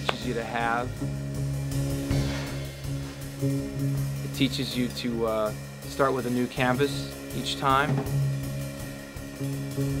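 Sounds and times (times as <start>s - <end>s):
band music with low notes: 0.0s - 10.0s
light drum kit and cymbals: 0.0s - 10.0s.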